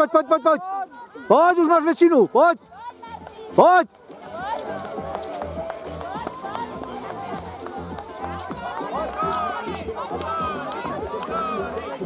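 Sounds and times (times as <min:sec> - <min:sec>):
spectators shouting and cheering: 0:02.8 - 0:12.0.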